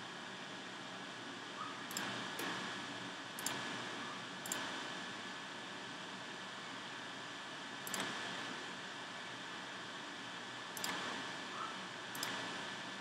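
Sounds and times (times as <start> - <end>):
computer mouse clicks: 1.6 - 2.6, 3.4 - 3.6, 4.4 - 4.8, 7.8 - 8.2, 10.8 - 12.5.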